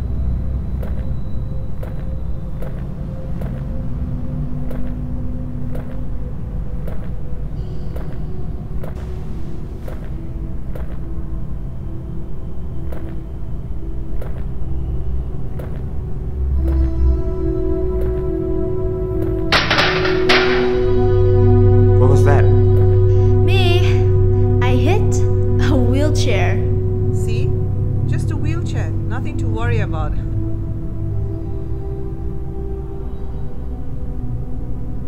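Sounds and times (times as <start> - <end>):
low rumbling drone: 0.0 - 35.0.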